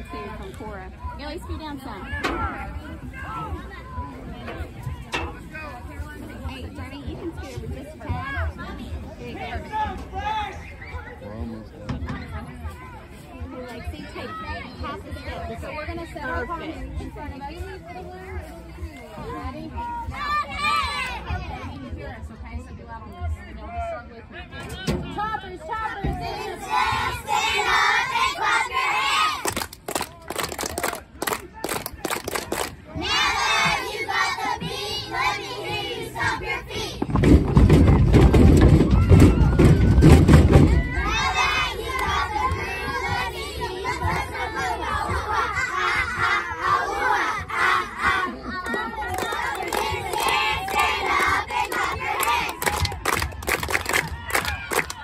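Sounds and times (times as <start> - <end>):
sharp hand claps: 29.4 - 32.8, 52.2 - 55.0.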